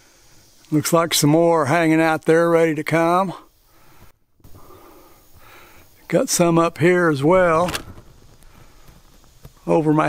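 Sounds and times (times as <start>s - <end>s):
man breathing: 3.5s - 6.1s, 8.4s - 9.2s.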